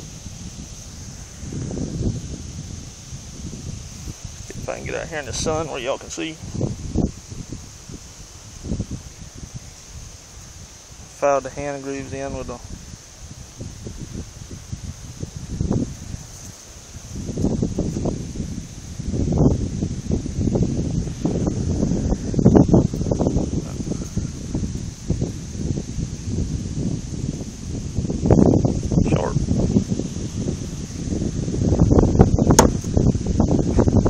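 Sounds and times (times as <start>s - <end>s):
rustling on phone microphone: 0.0s - 11.2s, 11.9s - 34.0s.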